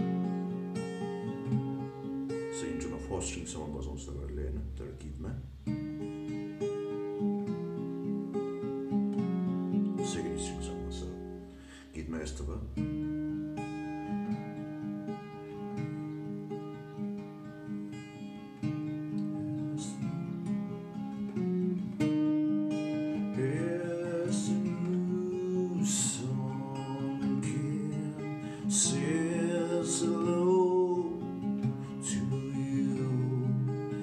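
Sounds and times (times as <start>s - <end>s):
acoustic guitar picked melody: 0.0s - 34.0s.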